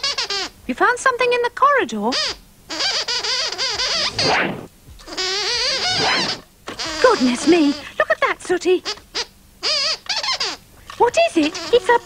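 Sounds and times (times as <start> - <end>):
puppet squeaker squeaks: 0.0 - 0.5, 2.1 - 7.9, 8.8 - 12.0.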